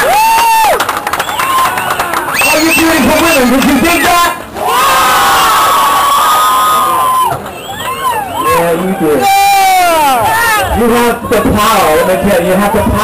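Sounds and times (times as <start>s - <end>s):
people whooping and yelling: 0.0s - 12.2s
concert crowd cheering: 0.0s - 13.0s.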